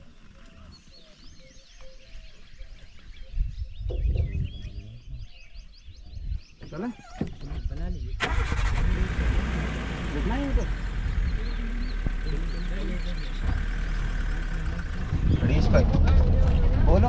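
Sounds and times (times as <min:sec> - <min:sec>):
jeep engine starting and running: 0:08.2 - 0:17.0.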